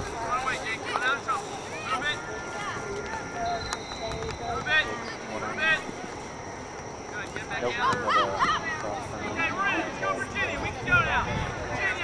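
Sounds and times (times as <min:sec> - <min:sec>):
steady high whine: 0:00.0 - 0:12.0
distant shouts and calls: 0:00.4 - 0:12.0.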